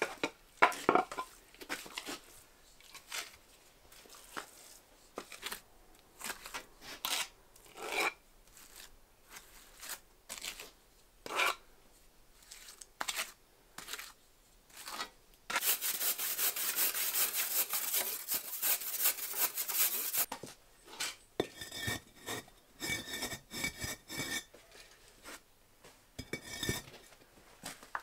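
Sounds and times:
trowel scraping wet mortar: 6.2s - 11.6s, 12.4s - 20.3s.

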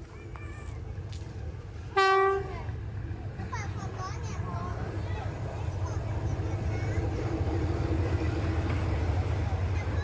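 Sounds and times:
locomotive rumble: 0.0s - 10.0s
locomotive horn blast: 2.0s - 2.6s.

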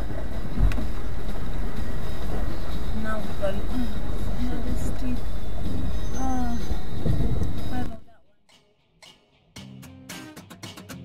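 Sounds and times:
vehicle engine and tyre rumble: 0.0s - 8.0s.

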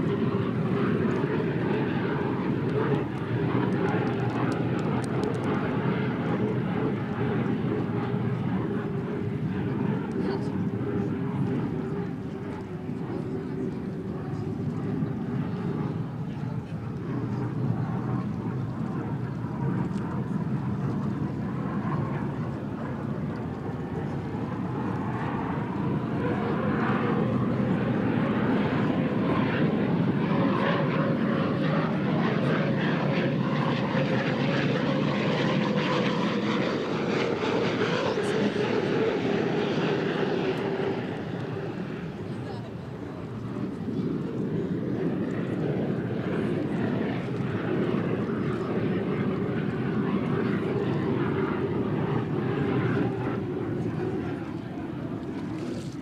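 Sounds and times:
hydroplane engine whine: 0.0s - 56.0s.

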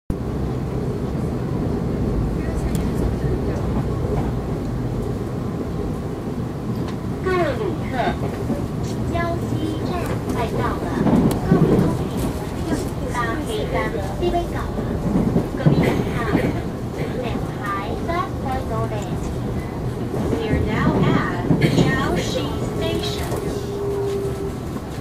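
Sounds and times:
electric train rumbling: 0.1s - 25.0s
onboard announcement: 9.1s - 19.4s, 20.1s - 24.8s.

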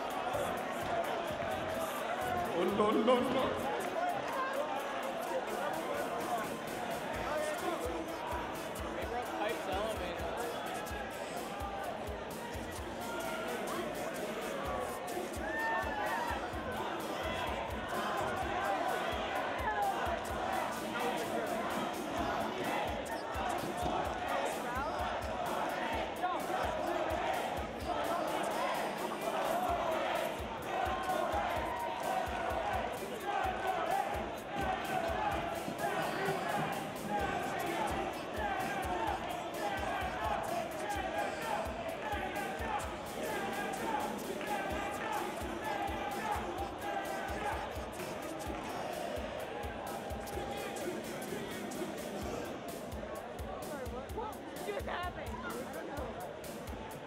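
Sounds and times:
background music: 0.0s - 57.0s
crowd talking and calling: 0.0s - 57.0s.

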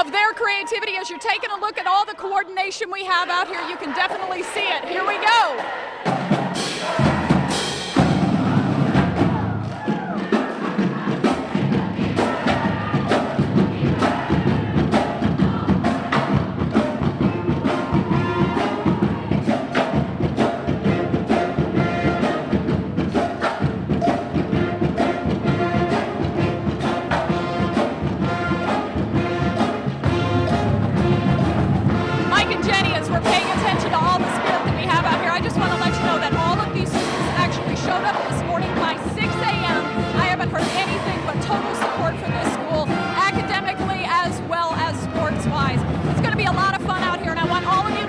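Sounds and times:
pep band playing: 0.0s - 48.0s.

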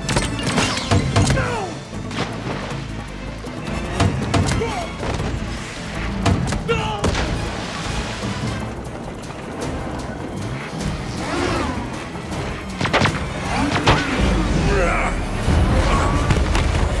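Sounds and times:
action movie music score: 0.0s - 17.0s.

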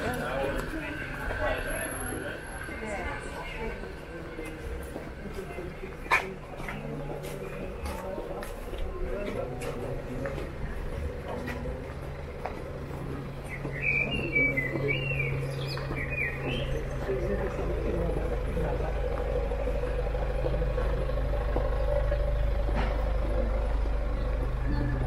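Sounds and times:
passers-by voices: 0.0s - 25.0s
traffic hum: 0.0s - 25.0s
bird chirping: 13.4s - 17.2s.

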